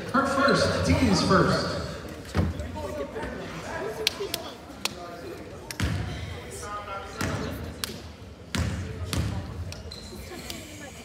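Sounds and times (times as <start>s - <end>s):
sneaker squeaks: 9.8s - 10.4s.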